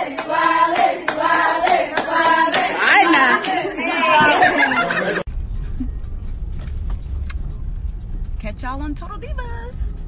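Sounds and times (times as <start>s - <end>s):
car cabin rumble: 5.3s - 10.0s.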